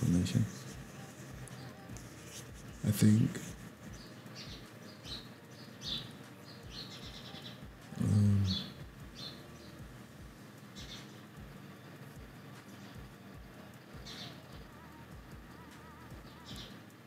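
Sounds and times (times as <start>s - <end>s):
birds chirping: 0.0s - 17.0s.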